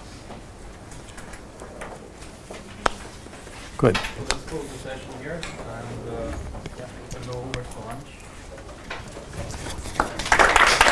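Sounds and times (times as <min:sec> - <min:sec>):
low room hum: 0:00.0 - 0:10.9
murmuring voices: 0:03.8 - 0:10.9.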